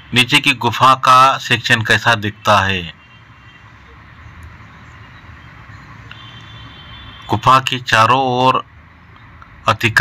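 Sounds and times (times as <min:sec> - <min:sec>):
distant city traffic: 0:00.0 - 0:10.0.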